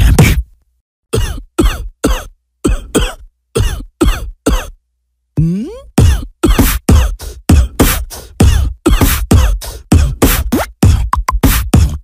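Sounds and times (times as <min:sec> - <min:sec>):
man coughing: 0:01.2 - 0:04.8, 0:05.4 - 0:07.8, 0:08.4 - 0:10.2.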